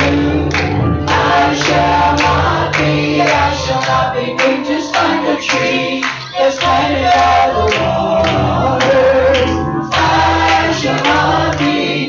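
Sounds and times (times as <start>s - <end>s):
keyboard accompaniment: 0.0s - 12.0s
man singing: 0.0s - 12.0s.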